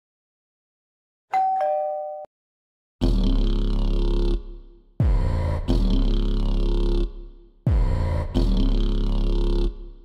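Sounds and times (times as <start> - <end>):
two-note doorbell chime: 1.3 - 2.3.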